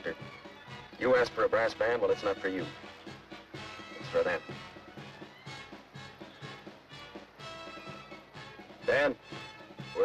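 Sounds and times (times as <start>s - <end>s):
brass band music: 0.0s - 10.0s.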